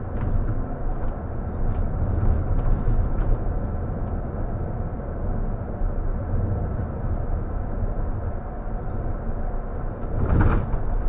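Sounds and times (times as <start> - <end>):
coach engine and road rumble: 0.0 - 11.0.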